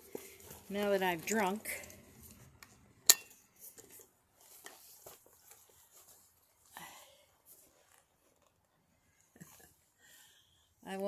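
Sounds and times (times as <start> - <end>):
handling rustles: 0.0 - 9.8.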